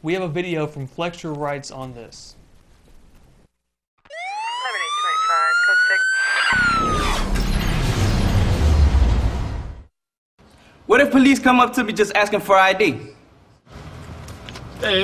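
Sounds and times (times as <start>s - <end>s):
police siren wailing: 4.1s - 7.4s
voices: 4.4s - 6.6s.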